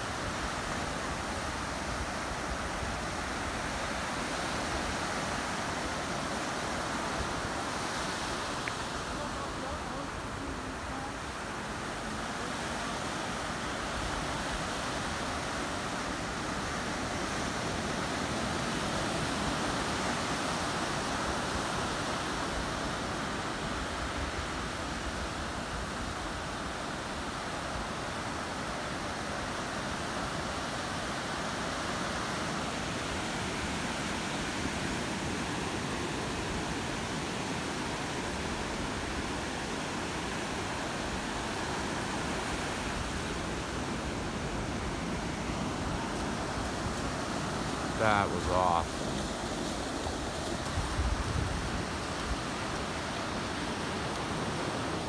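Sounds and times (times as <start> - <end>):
ocean waves breaking on beach: 0.0 - 55.0.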